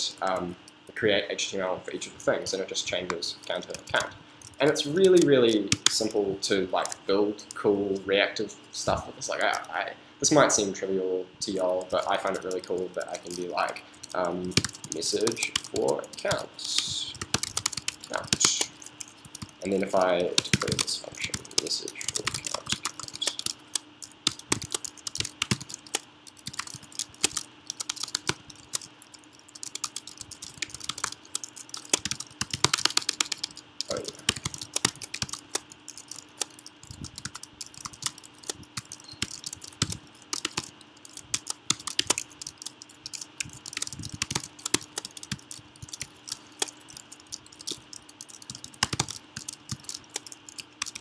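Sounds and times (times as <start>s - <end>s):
faint steady hum: 0.0s - 51.0s
typing on computer keyboard: 2.9s - 6.2s, 6.8s - 8.1s, 9.4s - 9.8s, 11.6s - 51.0s.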